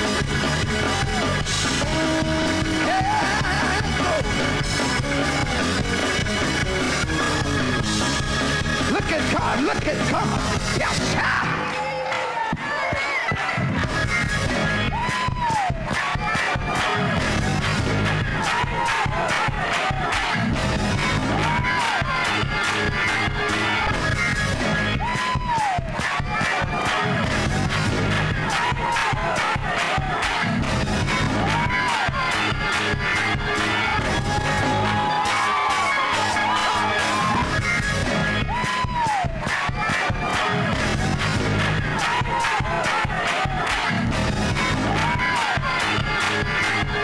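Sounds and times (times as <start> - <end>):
slowed gospel music with fast beat: 0.0 - 11.8, 13.4 - 47.0
congregation shouting and cheering: 0.0 - 47.0
congregation shouting: 33.6 - 37.6.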